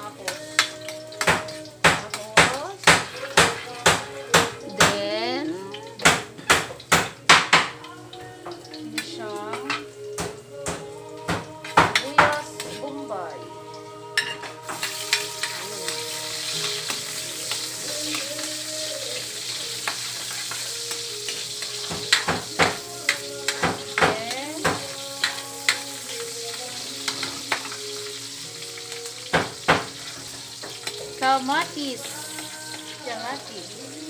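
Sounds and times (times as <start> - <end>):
onion sizzling in hot oil: 0.0 - 34.0
metal spatula scraping wok: 3.1 - 4.3.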